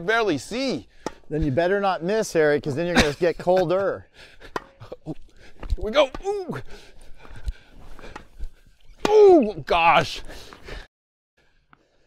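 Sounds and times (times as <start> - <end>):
tennis ball pops: 1.0 - 1.2, 4.5 - 4.8
running footsteps: 4.2 - 9.0.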